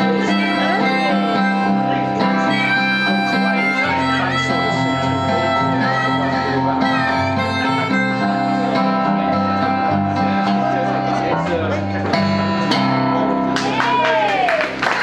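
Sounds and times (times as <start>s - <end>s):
acoustic guitar: 0.0s - 15.0s
electric bass guitar: 0.0s - 15.0s.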